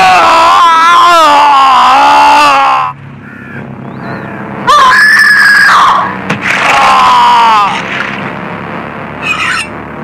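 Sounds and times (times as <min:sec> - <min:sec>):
high-pitched human scream: 0:00.0 - 0:02.9, 0:04.7 - 0:07.8.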